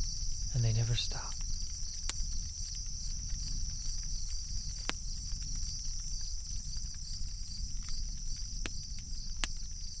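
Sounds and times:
high insect chorus: 0:00.0 - 0:10.0.

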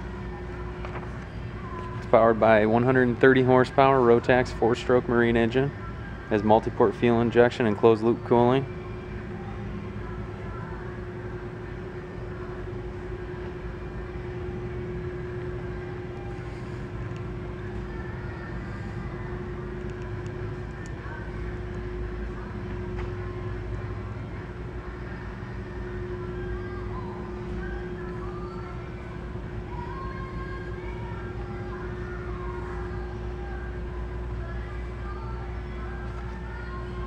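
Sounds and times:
constant mid-pitched tone: 0:00.0 - 0:37.0
low machinery hum: 0:00.0 - 0:37.0.

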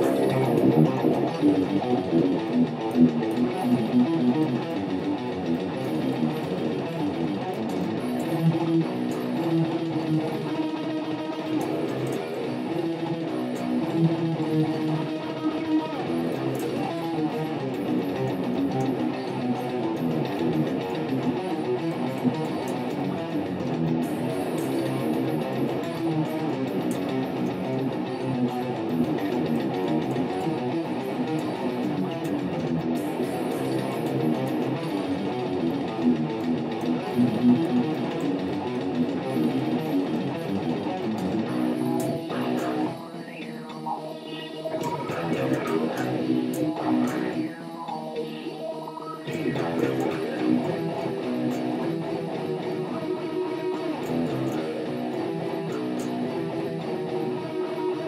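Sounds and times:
death metal backing track: 0:00.0 - 0:58.0
distorted electric guitar riffing: 0:00.0 - 0:58.0.

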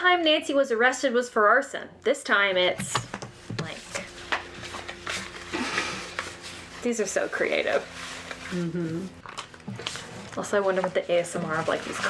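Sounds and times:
cards sliding rustle: 0:03.7 - 0:06.8.

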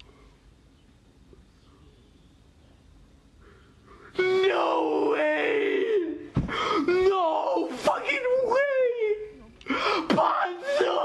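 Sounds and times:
man wailing in anguish: 0:04.2 - 0:09.4, 0:10.0 - 0:11.0.

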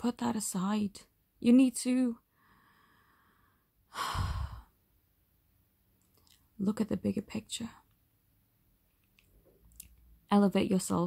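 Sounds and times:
woman sighing: 0:03.9 - 0:04.8.

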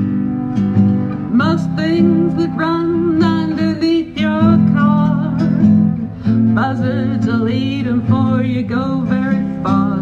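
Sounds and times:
acoustic guitar chords: 0:00.0 - 0:10.0
woman singing: 0:01.2 - 0:05.7, 0:06.3 - 0:10.0.

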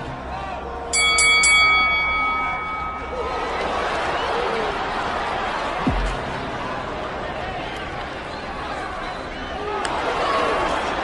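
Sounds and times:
boxing ring bell ringing: 0:00.9 - 0:03.6.

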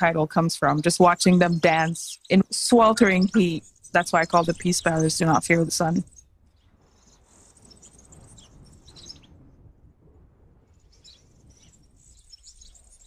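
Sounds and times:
faint high-pitched bird chirping: 0:00.0 - 0:09.4, 0:10.7 - 0:13.0.

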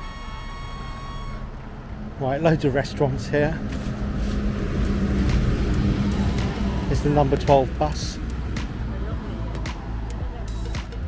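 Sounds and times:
bus engine humming: 0:00.0 - 0:11.0
background music: 0:03.2 - 0:11.0.

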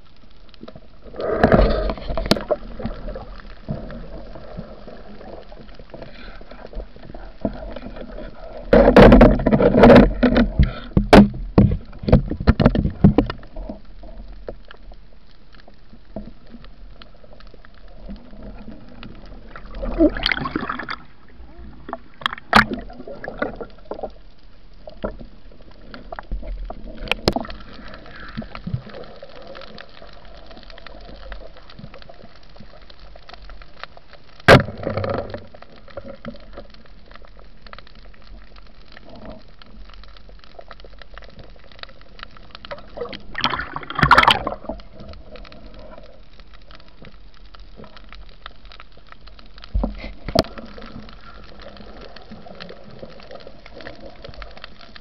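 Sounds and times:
low underwater hum: 0:00.0 - 0:55.0
water gurgling: 0:00.0 - 0:55.0
underwater clicks and knocks: 0:00.6 - 0:04.6, 0:05.2 - 0:14.9, 0:21.8 - 0:30.0, 0:32.6 - 0:55.0.

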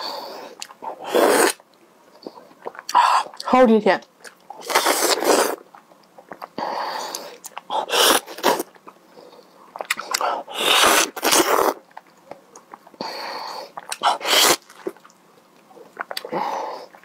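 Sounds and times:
wet mouth sounds: 0:02.2 - 0:03.5, 0:04.2 - 0:09.0, 0:09.7 - 0:13.0, 0:13.7 - 0:17.0
slurping bites of mango: 0:04.6 - 0:05.6.

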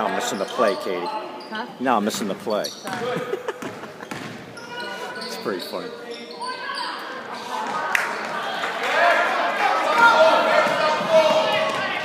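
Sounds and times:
basketball bouncing on hardwood: 0:02.9 - 0:04.4.

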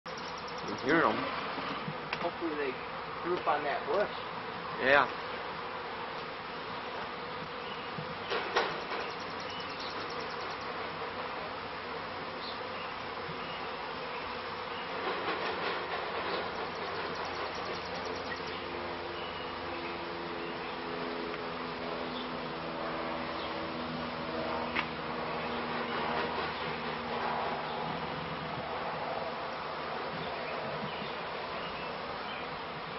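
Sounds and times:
bee swarm buzzing: 0:00.1 - 0:32.9.

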